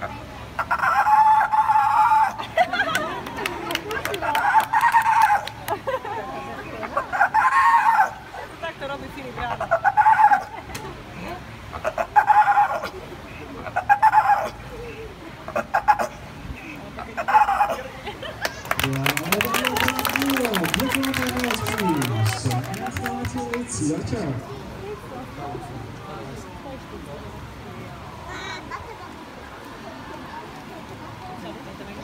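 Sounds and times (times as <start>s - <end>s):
sea lion calling: 0.6s - 2.4s, 9.5s - 10.5s, 11.7s - 12.9s, 13.6s - 14.6s, 15.5s - 16.2s, 17.0s - 17.9s.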